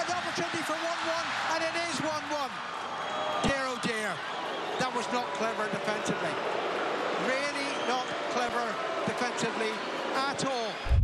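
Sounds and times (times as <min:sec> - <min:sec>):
man commentating: 0:00.0 - 0:02.6, 0:07.2 - 0:10.8
stadium crowd noise: 0:00.0 - 0:11.0.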